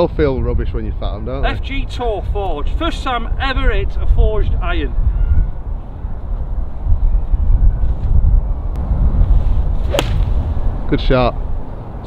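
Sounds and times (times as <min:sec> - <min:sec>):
wind rumbling on microphone: 0:00.0 - 0:12.0
golf club striking ball: 0:09.8 - 0:10.4.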